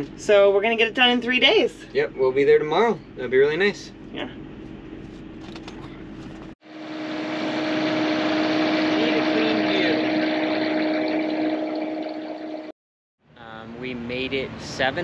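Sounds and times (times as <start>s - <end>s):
engine drone: 6.6s - 12.8s.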